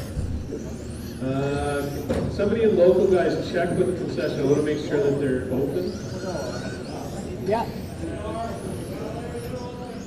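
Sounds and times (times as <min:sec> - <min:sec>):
rc car motors whining: 0:00.0 - 0:10.0.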